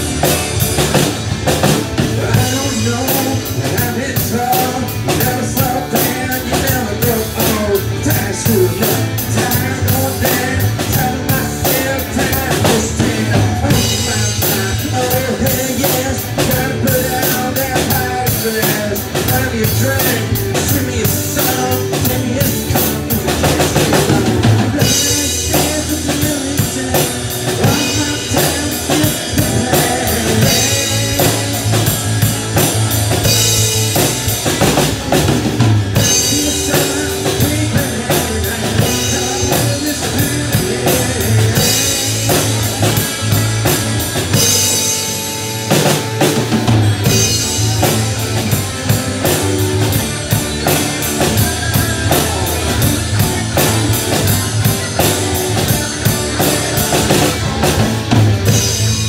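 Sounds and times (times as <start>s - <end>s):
drum kit beat: 0.0s - 59.0s
rock band playing: 0.0s - 59.0s.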